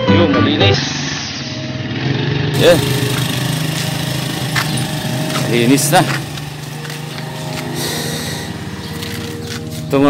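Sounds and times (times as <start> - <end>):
small engine humming: 2.6 - 10.0.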